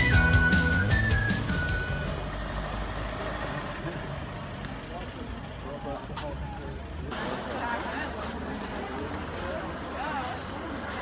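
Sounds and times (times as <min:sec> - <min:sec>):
whistle-like music melody: 0:00.0 - 0:02.3
buses idling: 0:00.0 - 0:11.0
people talking: 0:03.7 - 0:11.0.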